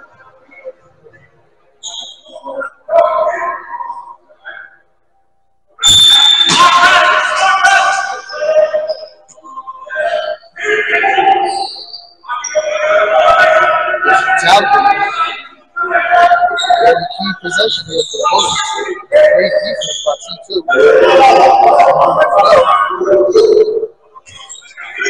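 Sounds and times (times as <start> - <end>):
loud voices calling out: 1.8 - 5.0, 5.8 - 25.0.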